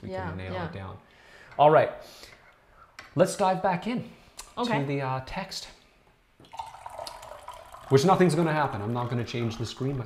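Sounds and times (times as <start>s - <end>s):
liquid pouring into small vessel: 6.4s - 10.0s.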